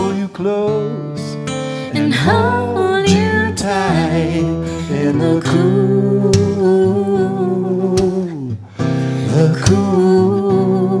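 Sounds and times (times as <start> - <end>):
acoustic guitar strum: 0.0 - 11.0.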